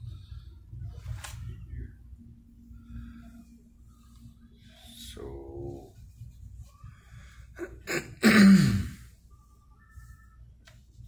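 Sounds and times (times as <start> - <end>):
person sneezing: 7.6 - 9.1.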